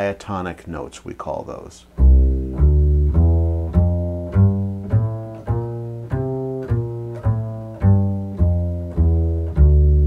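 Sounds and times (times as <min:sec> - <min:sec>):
upright bass plucked pizzicato: 0:02.0 - 0:10.0.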